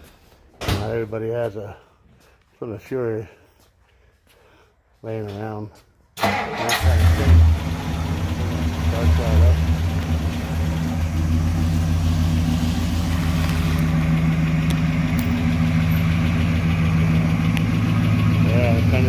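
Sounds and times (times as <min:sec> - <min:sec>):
car engine idling: 0:06.3 - 0:19.0.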